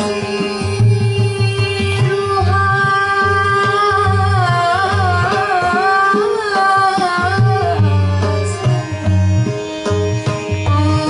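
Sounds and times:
hand drums: 0.0s - 11.0s
violin: 0.0s - 11.0s.

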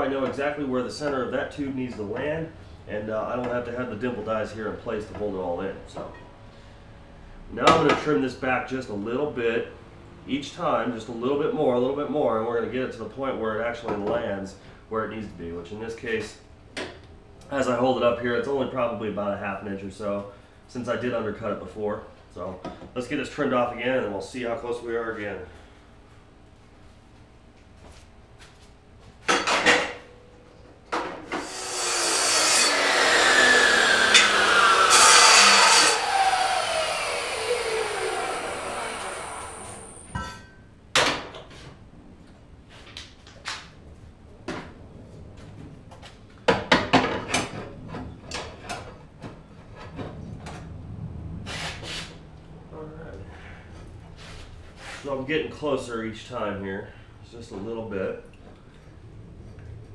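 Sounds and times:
chop saw cutting steel tube: 31.4s - 40.1s
motor winding down whine: 31.4s - 40.1s.

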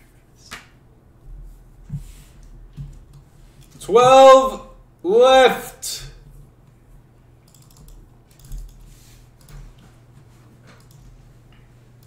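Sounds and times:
faint steady low hum: 0.0s - 12.0s.

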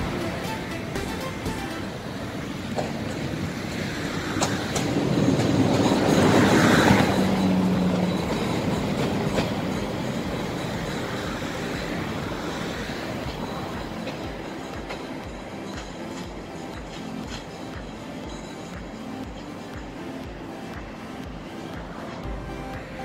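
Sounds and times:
passenger train rumble: 0.0s - 23.0s
wheel clacks over rail joints: 2.7s - 20.2s.

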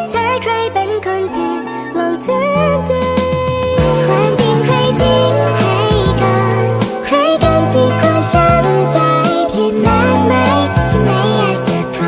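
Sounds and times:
sped-up pop song: 0.0s - 12.0s.

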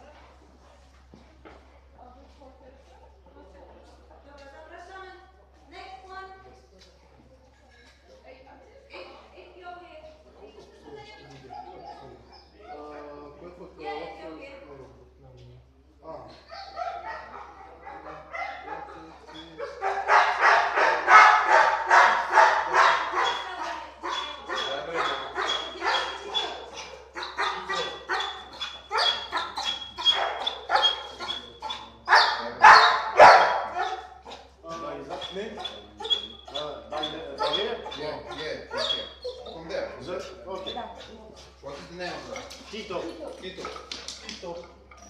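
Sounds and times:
dog barking rapidly: 19.6s - 34.3s, 35.6s - 39.4s.

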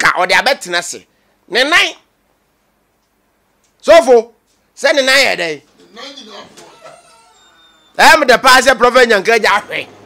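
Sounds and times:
person speaking: 8.0s - 10.0s.

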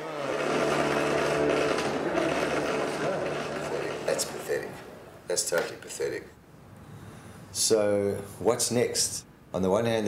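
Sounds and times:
bowed electric guitar drone: 0.2s - 4.9s
steady low note: 0.3s - 4.8s.

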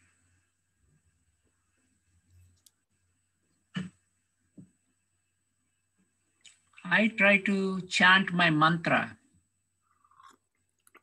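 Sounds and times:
faint soft clicks: 2.2s - 2.9s.

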